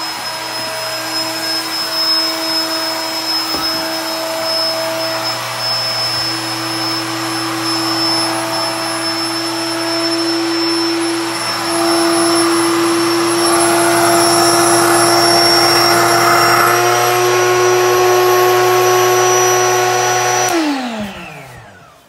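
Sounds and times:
air mattress pump motor hum: 0.0s - 22.0s.

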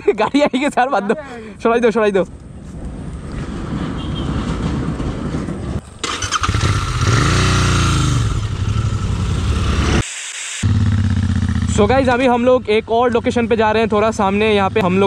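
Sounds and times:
motorcycle engine revving: 5.8s - 10.0s, 10.6s - 15.0s
motorcycle riding off: 5.8s - 10.0s, 10.6s - 12.5s.

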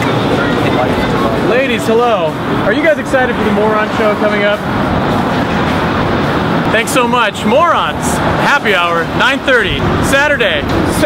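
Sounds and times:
street traffic noise: 0.0s - 11.0s
man talking: 0.7s - 4.6s, 6.7s - 11.0s.

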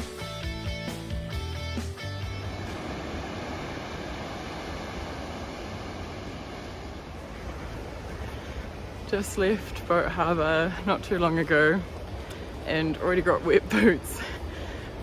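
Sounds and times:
strummed guitar music: 0.0s - 3.0s
surf breaking on beach: 2.0s - 15.0s.

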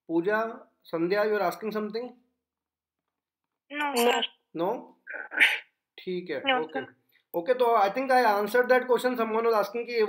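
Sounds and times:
person speaking over video call: 3.7s - 10.0s.

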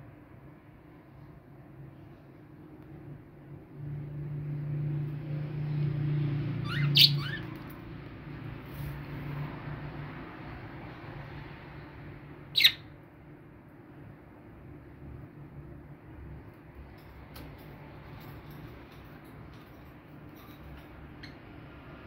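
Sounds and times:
budgerigar chirps: 12.6s - 12.9s.

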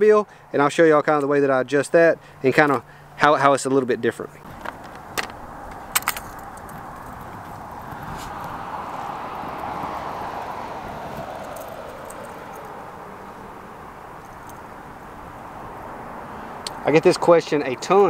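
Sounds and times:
vehicle passing by: 4.4s - 18.0s.

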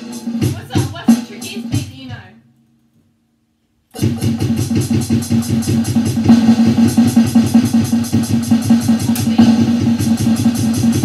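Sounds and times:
low drum hits: 4.0s - 11.0s.

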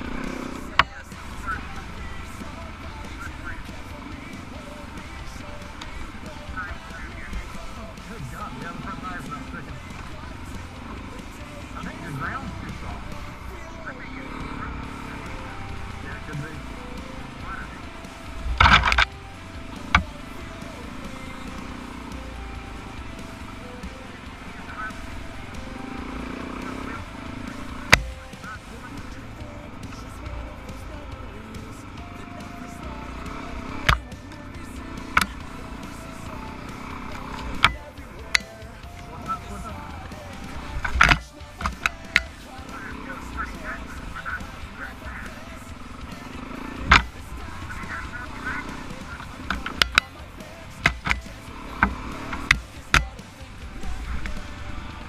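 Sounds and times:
muffled dirt bike engine: 0.0s - 55.0s.

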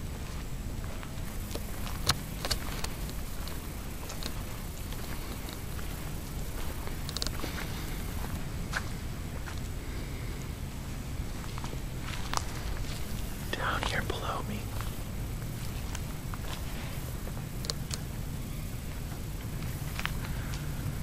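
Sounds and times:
steady low rumble: 0.0s - 21.0s
faint clicks: 6.8s - 7.6s, 17.6s - 18.1s
person whispering: 13.4s - 14.9s.

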